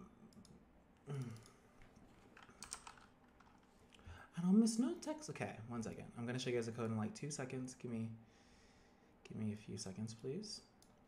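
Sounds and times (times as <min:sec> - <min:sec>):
keyboard typing and clicks: 0:02.4 - 0:03.6.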